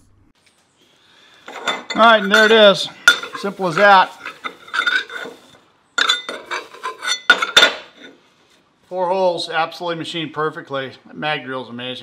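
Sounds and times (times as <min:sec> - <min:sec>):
metal chips clinking on steel table: 0:01.5 - 0:08.2.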